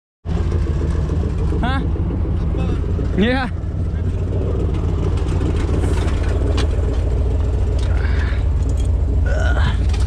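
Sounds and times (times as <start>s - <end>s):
truck engine idling: 0.3s - 10.0s.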